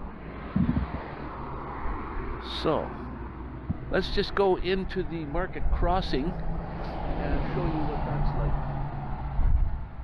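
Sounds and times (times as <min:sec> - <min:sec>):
road traffic hum and rumble: 0:00.0 - 0:10.0.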